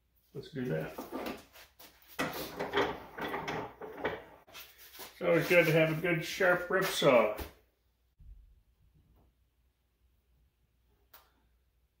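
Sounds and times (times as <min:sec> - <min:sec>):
wooden knocks and scrapes: 0:00.8 - 0:05.2.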